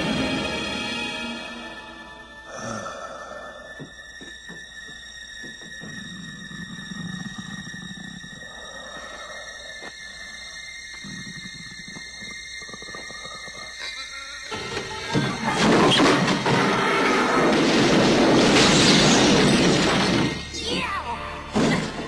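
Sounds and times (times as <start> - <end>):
brooding horror score: 0.0 - 22.0.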